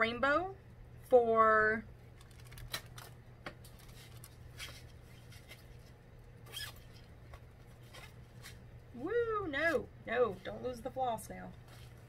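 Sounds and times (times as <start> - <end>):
steady low hum: 0.0 - 12.0
paper and packaging rustling: 2.2 - 6.0.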